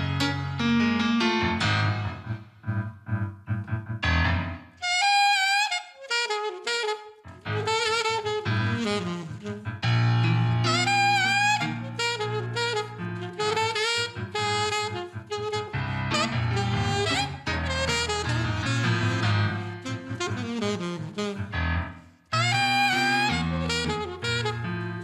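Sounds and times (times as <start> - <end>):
keyboard chords: 0.0 - 4.9, 7.3 - 25.0
saxophone melody: 4.7 - 25.0.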